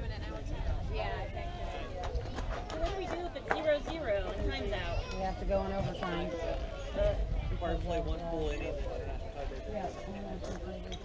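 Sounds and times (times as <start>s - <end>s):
people calling out and chattering: 0.0s - 11.0s.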